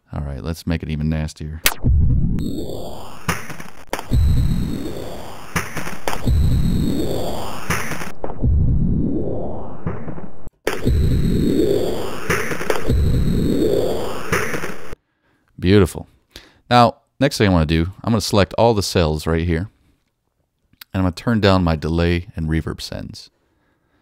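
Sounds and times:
distorted bit-crushed clatter: 0:01.7 - 0:08.6, 0:09.8 - 0:15.0.

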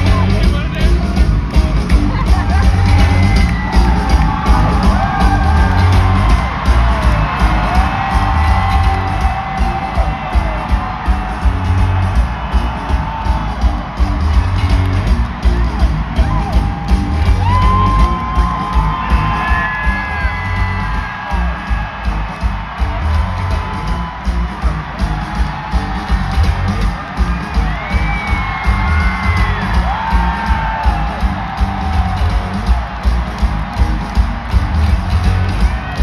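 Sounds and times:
live rock band: 0:00.0 - 0:36.0
crowd singing and whooping: 0:02.0 - 0:36.0.

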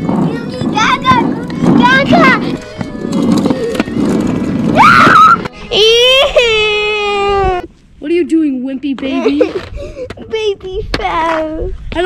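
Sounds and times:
plastic wheels rolling on concrete: 0:00.0 - 0:07.7.

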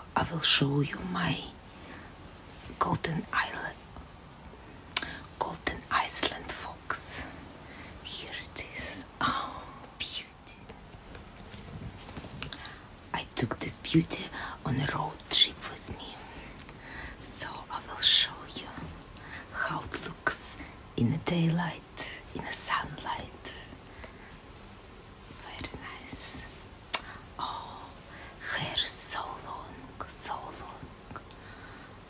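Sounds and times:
woman whispering: 0:00.0 - 0:01.6, 0:02.6 - 0:03.8, 0:05.0 - 0:07.4, 0:08.0 - 0:10.7, 0:12.6 - 0:23.8, 0:25.3 - 0:31.4.

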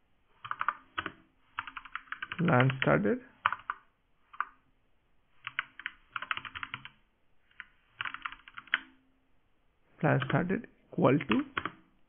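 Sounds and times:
computer keyboard typing: 0:00.4 - 0:04.6, 0:05.4 - 0:09.0, 0:10.2 - 0:10.4, 0:11.2 - 0:11.9.

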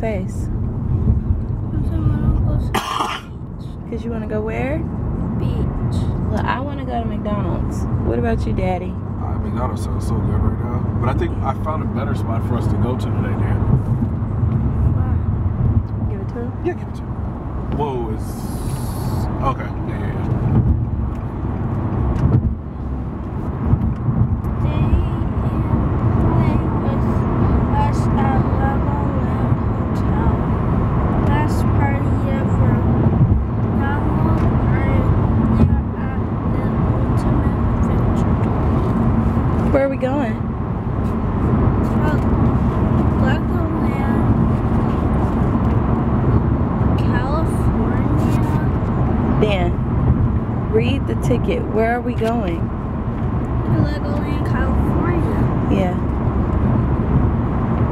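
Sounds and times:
car cabin low rumble: 0:00.0 - 0:57.9.

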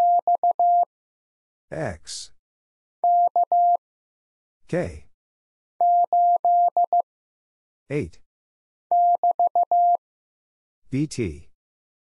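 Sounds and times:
morse code beeps: 0:00.0 - 0:00.9, 0:03.0 - 0:03.8, 0:05.8 - 0:07.0, 0:08.9 - 0:10.0
recorded voice speaking: 0:01.7 - 0:02.4, 0:04.6 - 0:05.2, 0:07.9 - 0:08.3, 0:10.9 - 0:11.5.

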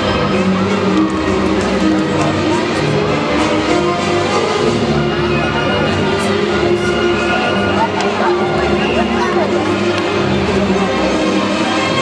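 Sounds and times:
instrumental music over loudspeakers: 0:00.0 - 0:12.0.

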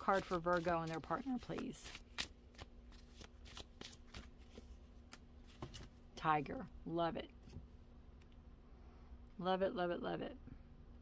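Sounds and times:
cards being shuffled: 0:00.0 - 0:05.9.

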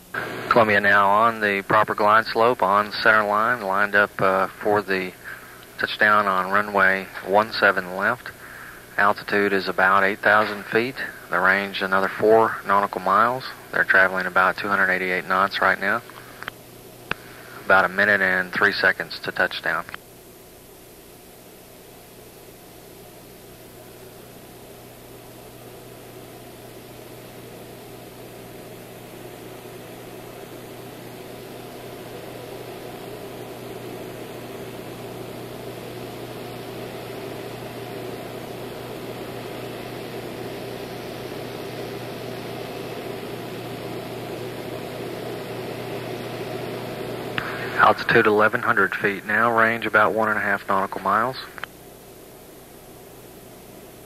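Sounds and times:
low steady hum: 0:00.0 - 0:54.0.

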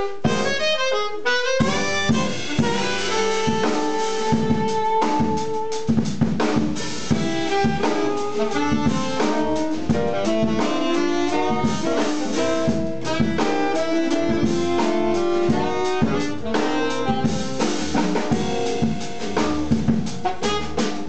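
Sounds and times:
tenor saxophone: 0:00.0 - 0:06.2, 0:06.8 - 0:21.0
alto saxophone: 0:00.0 - 0:21.0
busy drum kit: 0:00.0 - 0:21.0
double bass: 0:00.0 - 0:21.0.

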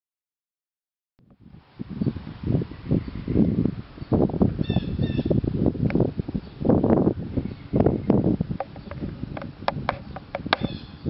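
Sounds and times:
low thumping and rumble on microphone: 0:01.2 - 0:11.0.

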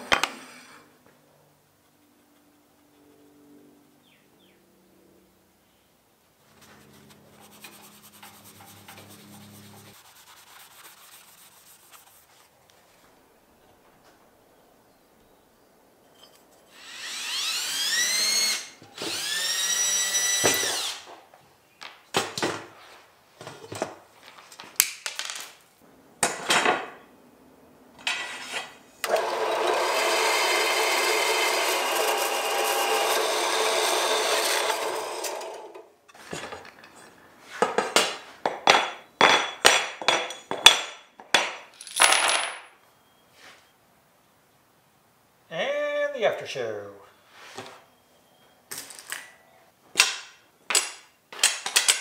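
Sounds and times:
power tool motor spinning up: 0:16.7 - 0:21.1, 0:29.0 - 0:35.8
bandsaw cutting metal: 0:28.1 - 0:35.8
metal parts clicking and knocking: 0:50.7 - 0:52.0.

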